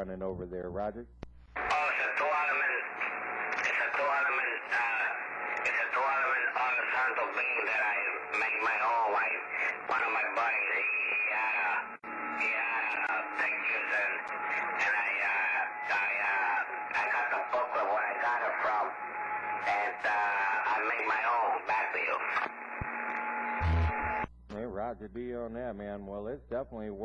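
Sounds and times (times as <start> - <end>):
man talking over radio: 1.6 - 22.5.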